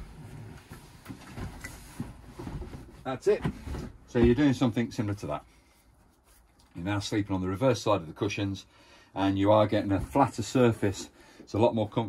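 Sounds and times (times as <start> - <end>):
soft bumps of cushions: 0.0 - 4.7.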